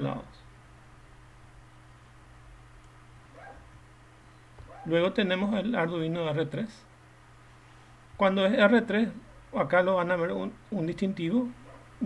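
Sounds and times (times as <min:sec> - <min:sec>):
man talking: 0:00.0 - 0:00.5, 0:04.9 - 0:06.9, 0:08.2 - 0:11.6
faint electrical hum: 0:00.0 - 0:12.0.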